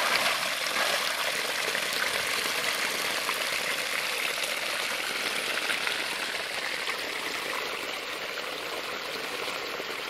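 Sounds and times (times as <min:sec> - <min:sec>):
stream water running: 0:00.0 - 0:10.0.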